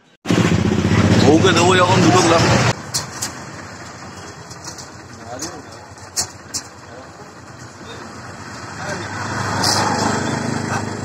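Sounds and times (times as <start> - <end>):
voices: 0.8 - 11.0.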